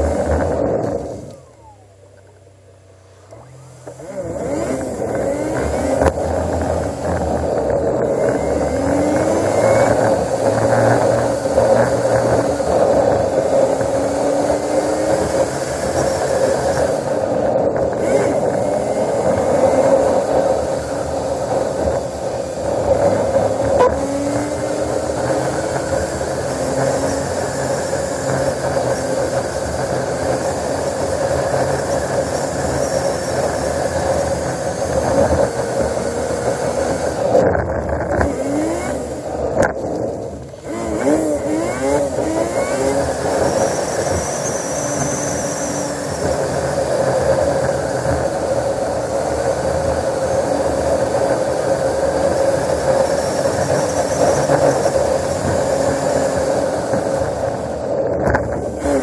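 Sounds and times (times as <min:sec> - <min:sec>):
engine pitch glides: 0:00.0 - 0:59.0
vehicle driving at speed: 0:00.0 - 0:59.0.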